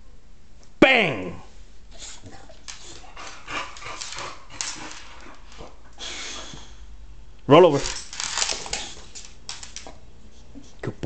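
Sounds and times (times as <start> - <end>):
dog breathing: 1.9 - 7.0
dog claws scuffing on tiles: 2.2 - 5.8, 7.8 - 10.0.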